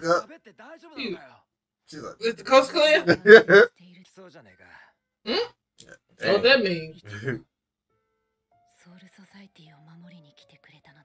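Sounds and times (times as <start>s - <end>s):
person speaking softly: 0.0s - 0.2s, 2.9s - 3.7s, 6.2s - 7.4s
faint background music tones: 6.2s - 7.4s, 8.6s - 11.0s.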